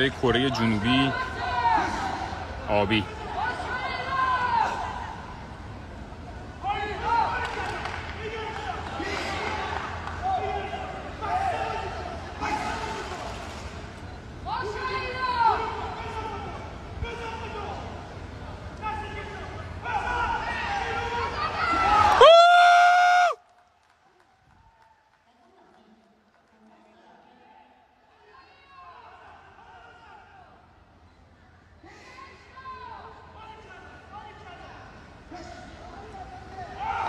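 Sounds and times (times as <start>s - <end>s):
high shouts: 19.8s - 23.4s.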